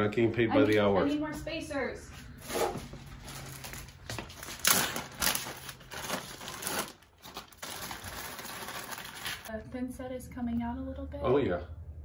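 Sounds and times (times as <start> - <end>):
plastic bag crinkling: 3.0 - 9.5.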